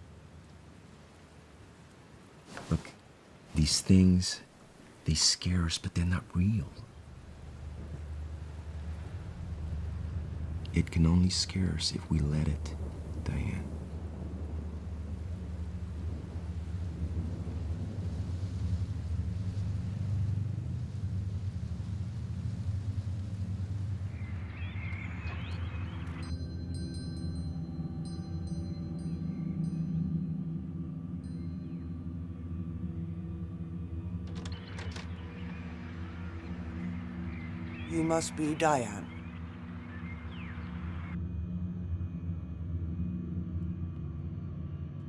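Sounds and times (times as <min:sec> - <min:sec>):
low rumbling drone: 0:05.9 - 0:45.0
sustained higher tones: 0:18.3 - 0:45.0.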